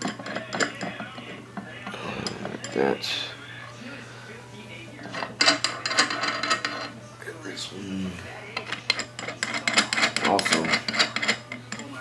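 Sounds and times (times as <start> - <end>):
metal nuts clinking and rattling: 0.0 - 1.4, 5.0 - 6.9, 8.6 - 11.9.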